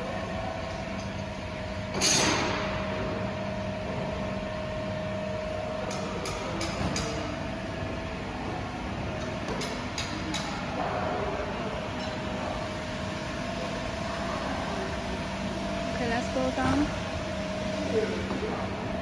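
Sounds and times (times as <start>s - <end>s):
factory machinery humming: 0.0s - 19.0s
mid-pitched machine whine: 0.0s - 19.0s.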